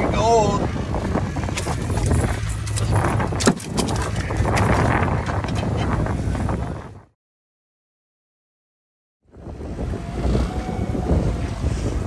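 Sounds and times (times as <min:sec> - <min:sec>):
wind on microphone: 0:00.0 - 0:07.2, 0:09.2 - 0:12.0.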